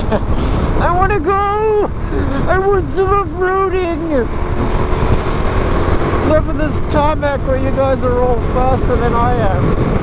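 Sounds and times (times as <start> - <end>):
motorcycle engine cruising: 0.0 - 10.0
wind rush on microphone: 0.0 - 10.0.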